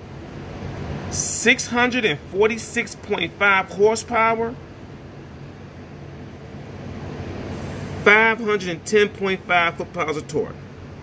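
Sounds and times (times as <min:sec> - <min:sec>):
low machinery drone: 0:00.0 - 0:11.0
high hiss: 0:07.0 - 0:08.6.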